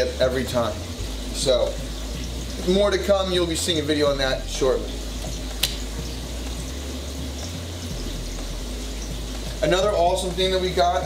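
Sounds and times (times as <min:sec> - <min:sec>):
running water rushing: 0:00.0 - 0:11.0
sharp click: 0:05.6 - 0:05.8.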